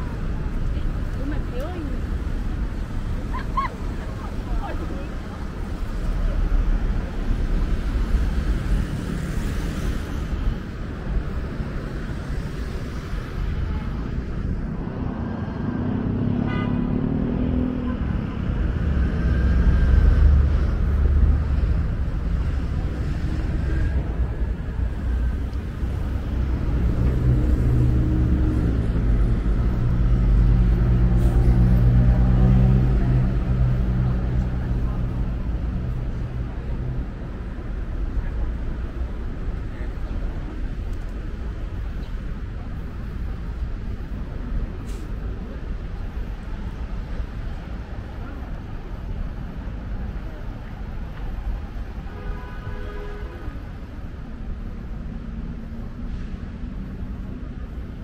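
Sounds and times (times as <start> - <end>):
vehicles passing: 0.0 - 58.0.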